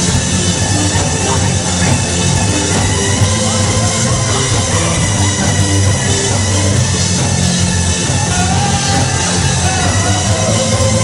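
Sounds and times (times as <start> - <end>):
live band playing instrumental: 0.0 - 11.0.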